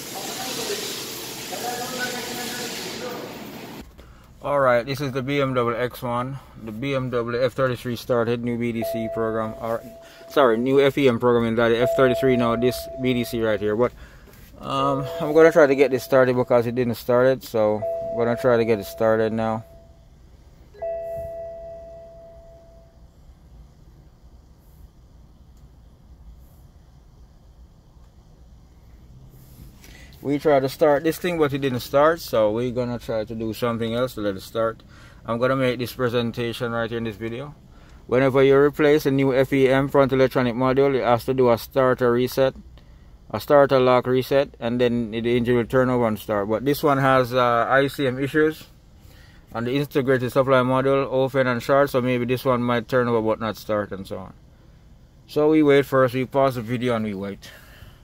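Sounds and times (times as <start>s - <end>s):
steady hiss: 0.0s - 4.4s
faint low hum: 3.8s - 58.0s
dashboard warning chime: 8.7s - 14.0s, 14.7s - 23.1s.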